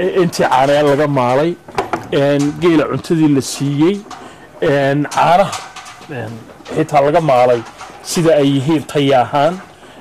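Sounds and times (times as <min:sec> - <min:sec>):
person speaking: 0:00.0 - 0:09.8.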